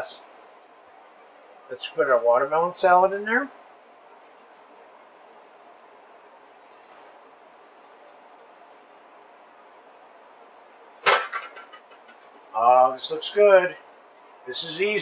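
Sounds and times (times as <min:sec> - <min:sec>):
clatter of quick knocks: 0:11.0 - 0:12.3.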